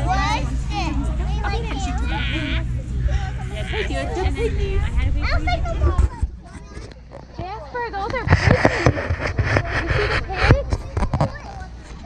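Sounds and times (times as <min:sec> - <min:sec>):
children's voices: 0:00.0 - 0:12.0.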